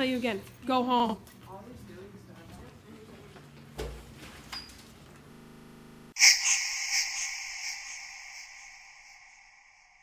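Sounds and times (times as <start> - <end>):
loud high-pitched pulsing tone: 6.1 - 10.0.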